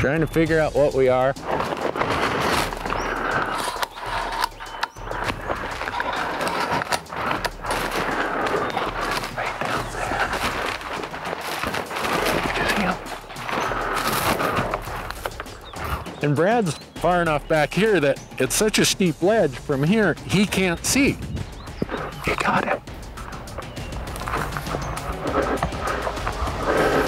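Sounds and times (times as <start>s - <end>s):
clothing and gear rustling: 1.1s - 16.9s, 20.3s - 27.0s.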